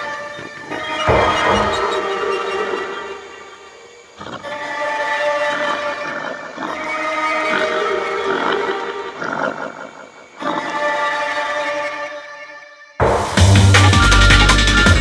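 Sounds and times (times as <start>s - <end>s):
held synth tones: 0.0s - 10.9s.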